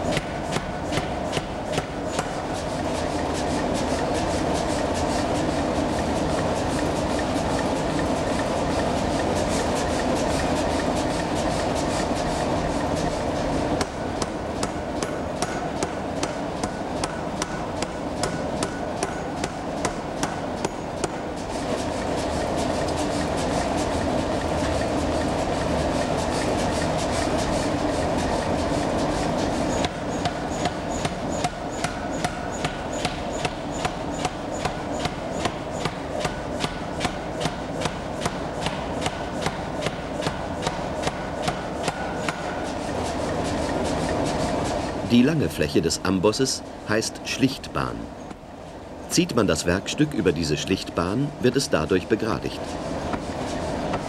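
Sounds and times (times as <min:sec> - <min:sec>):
forging hammer pounding hot metal: 0:13.8 - 0:21.3, 0:29.8 - 0:42.7.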